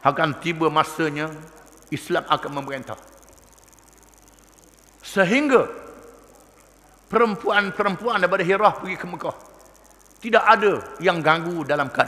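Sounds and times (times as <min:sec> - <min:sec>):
fast-pulsing high hiss: 0:00.0 - 0:12.0
low mains hum: 0:00.0 - 0:12.0.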